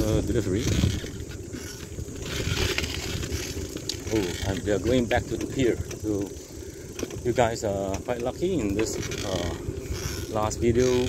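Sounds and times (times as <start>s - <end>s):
bicycle tyres rumbling on concrete: 0.0s - 11.0s
light rattles: 0.0s - 11.0s
wind buffeting microphone: 0.0s - 11.0s.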